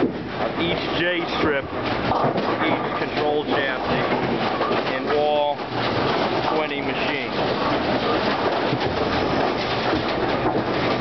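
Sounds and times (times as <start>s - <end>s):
machinery clattering: 0.0s - 11.0s.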